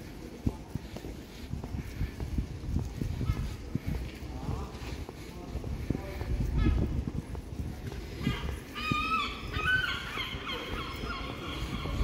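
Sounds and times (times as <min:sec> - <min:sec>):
people talking: 0:00.0 - 0:02.2, 0:02.8 - 0:12.0
footsteps on paving: 0:00.0 - 0:12.0.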